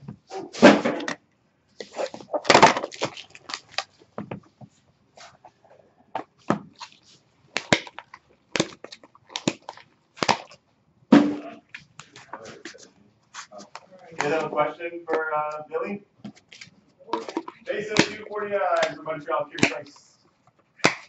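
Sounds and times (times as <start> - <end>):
cards rustling: 1.8 - 4.1, 6.7 - 10.6, 16.2 - 21.0.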